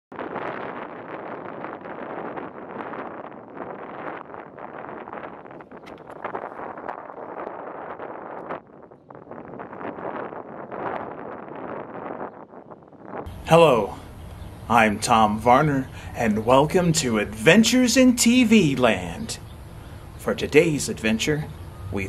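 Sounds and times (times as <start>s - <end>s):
gusting wind: 0.1s - 22.0s.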